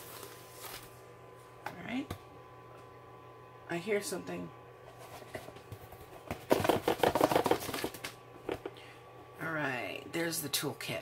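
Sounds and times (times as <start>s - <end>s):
contents rattling in cardboard box: 6.3s - 8.1s.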